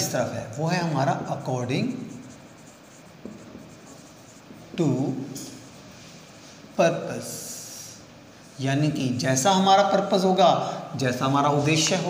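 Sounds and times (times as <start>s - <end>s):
marker writing on whiteboard: 0.8s - 6.7s, 11.4s - 12.0s
man talking: 4.8s - 5.6s, 8.6s - 12.0s.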